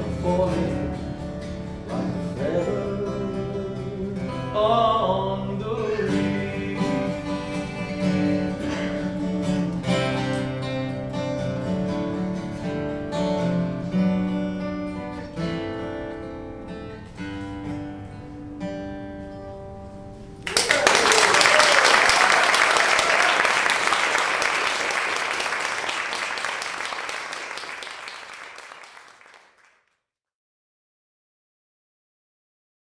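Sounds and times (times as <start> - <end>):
person singing: 0.0 - 1.1, 1.9 - 9.7
acoustic guitar picked notes: 0.0 - 20.4
audience applause: 20.4 - 29.9.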